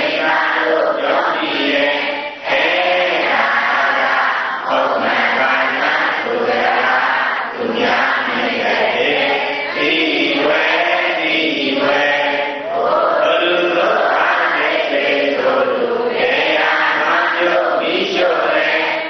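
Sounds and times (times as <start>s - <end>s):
congregation chanting in unison: 0.0s - 19.0s.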